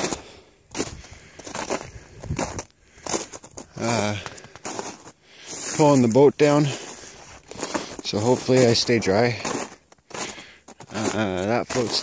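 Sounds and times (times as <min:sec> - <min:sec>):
footsteps crunching through snow: 0:00.0 - 0:12.0.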